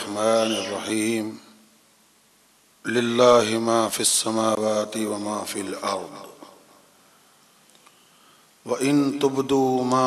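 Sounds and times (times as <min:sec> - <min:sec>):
man chanting: 0:00.0 - 0:01.6, 0:02.8 - 0:06.7, 0:08.6 - 0:10.0.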